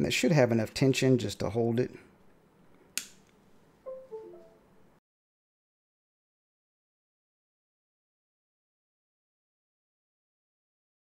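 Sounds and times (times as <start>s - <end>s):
sharp click: 3.0s - 3.4s
descending musical notes: 3.9s - 4.6s.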